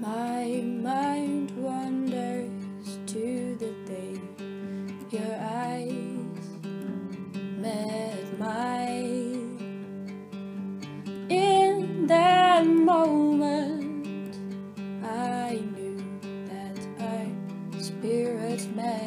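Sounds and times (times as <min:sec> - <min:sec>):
person singing: 0:00.0 - 0:09.9, 0:11.3 - 0:19.0
acoustic guitar strumming: 0:00.0 - 0:19.0.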